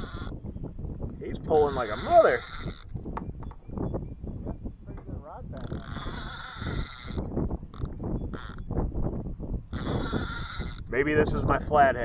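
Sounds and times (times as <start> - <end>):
wind rumble: 0.0 - 12.0.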